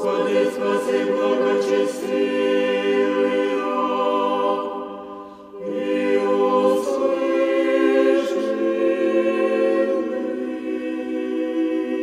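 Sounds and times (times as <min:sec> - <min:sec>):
choir chanting a cappella: 0:00.0 - 0:12.0
breath between phrases: 0:05.0 - 0:05.6.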